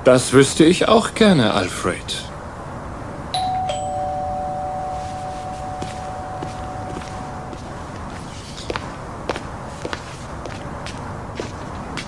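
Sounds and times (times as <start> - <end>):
two-note doorbell chime: 3.4 - 7.7.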